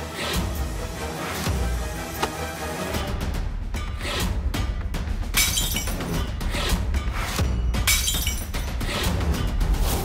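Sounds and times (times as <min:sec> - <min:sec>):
dramatic background music: 0:00.0 - 0:10.0
glass shattering: 0:05.4 - 0:06.2, 0:07.8 - 0:08.7.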